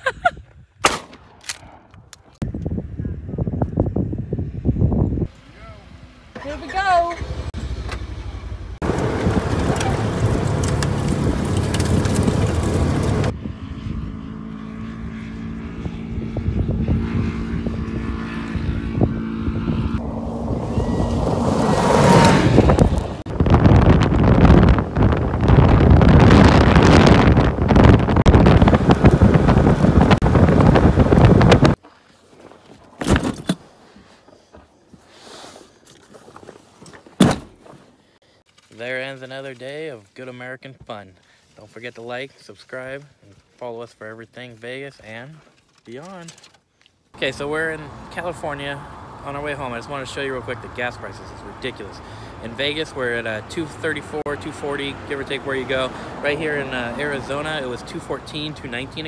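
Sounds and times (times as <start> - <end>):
wind on microphone: 2.4 - 5.3, 15.6 - 31.8
off-road vehicle engine running: 5.4 - 31.8.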